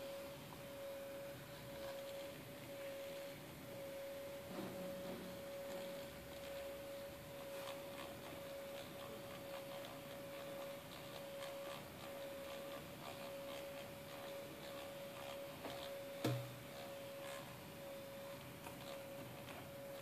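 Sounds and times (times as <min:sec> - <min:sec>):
disc motor whine: 0:00.0 - 0:20.0.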